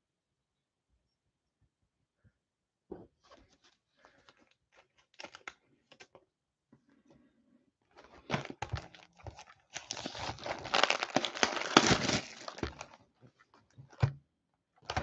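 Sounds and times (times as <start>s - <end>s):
plastic wrap crinkling and tearing: 4.7s - 6.0s, 7.9s - 13.1s.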